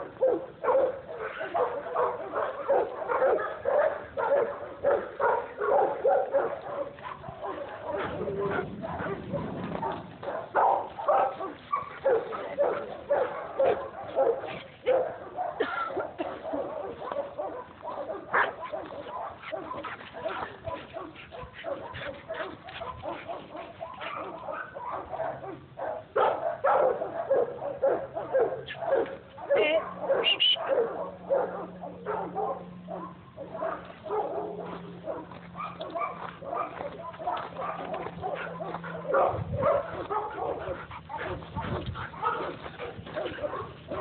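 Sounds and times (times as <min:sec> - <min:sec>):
dogs play-fighting: 0:00.0 - 0:44.0.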